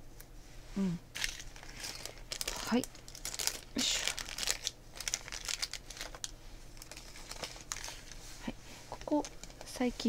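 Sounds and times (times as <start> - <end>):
plastic packaging crinkling: 1.1 - 9.9.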